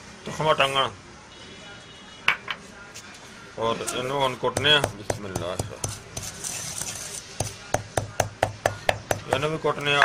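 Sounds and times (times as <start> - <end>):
pestle pounding in stone mortar: 4.5 - 10.0.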